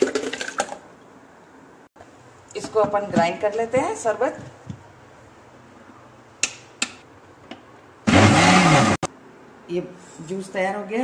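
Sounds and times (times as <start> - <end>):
mixer grinder motor whirring: 8.0 - 9.1.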